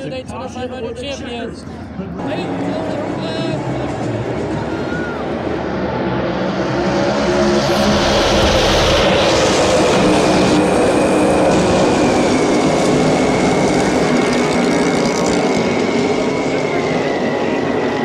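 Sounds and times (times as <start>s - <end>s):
race cars racing past: 1.7s - 18.0s.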